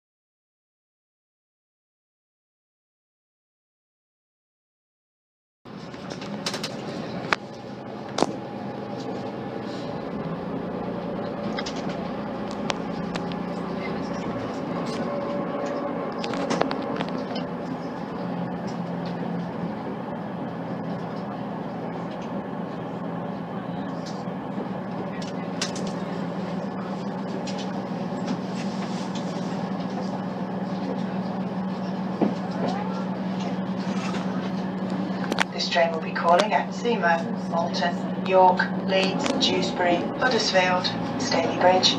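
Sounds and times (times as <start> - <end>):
diesel engine low hum: 5.7 - 41.9
train running noise: 5.7 - 41.9.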